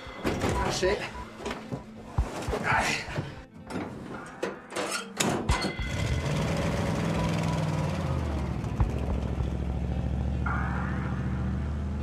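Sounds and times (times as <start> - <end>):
music: 0.0 - 12.0
truck engine running: 5.7 - 12.0.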